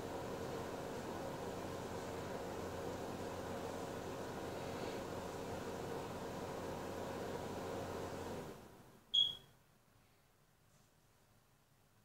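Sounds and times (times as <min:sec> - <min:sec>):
electric appliance motor hum: 0:00.0 - 0:08.8
short high electronic beep: 0:09.1 - 0:09.4.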